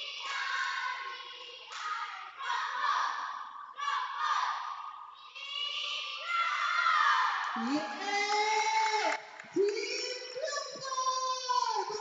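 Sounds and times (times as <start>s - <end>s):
children singing together: 0.0s - 7.4s.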